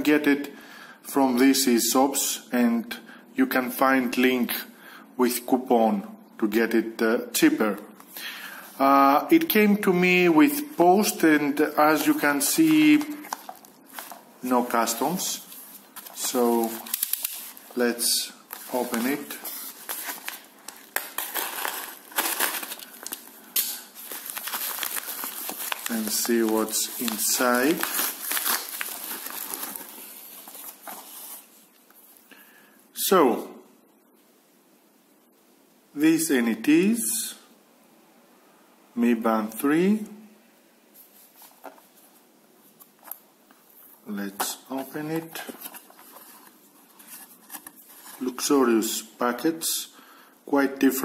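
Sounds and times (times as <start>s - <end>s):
paper crinkling and rustling: 11.9s - 32.1s, 41.0s - 43.2s, 43.8s - 48.5s.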